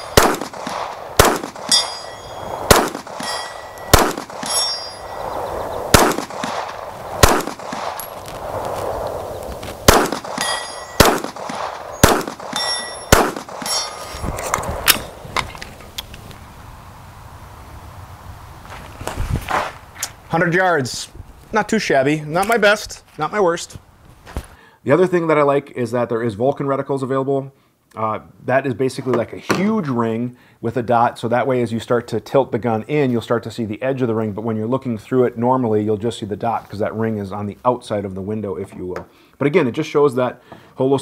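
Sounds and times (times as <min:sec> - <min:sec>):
pistol shots: 0:00.0 - 0:05.0, 0:05.9 - 0:08.2, 0:09.8 - 0:14.0
bullets clanging on steel plates: 0:01.4 - 0:05.1, 0:10.1 - 0:11.6, 0:12.3 - 0:14.2.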